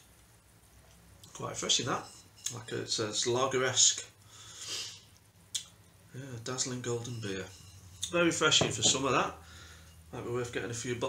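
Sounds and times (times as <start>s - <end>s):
person breathing softly: 4.2s - 5.1s, 9.4s - 10.1s.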